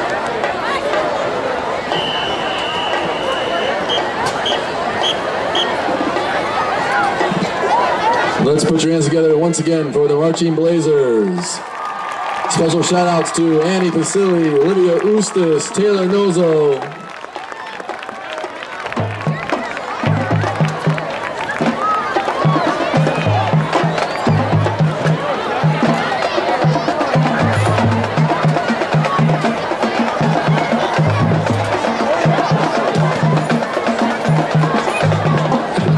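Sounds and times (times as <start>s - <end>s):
crowd chatter: 0.0s - 35.9s
marching drumline playing: 1.9s - 7.5s, 16.0s - 35.9s.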